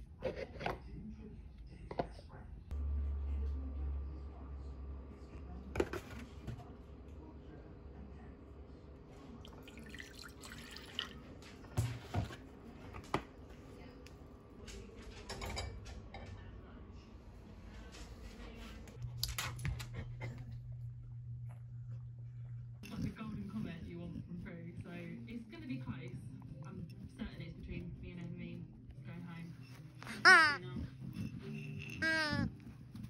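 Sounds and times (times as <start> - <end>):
steady low hum: 15.8 - 33.0.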